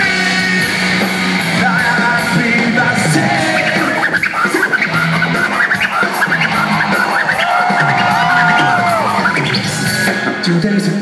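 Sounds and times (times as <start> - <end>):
rock band playing live: 0.0 - 11.0
turntable scratching: 3.1 - 10.0.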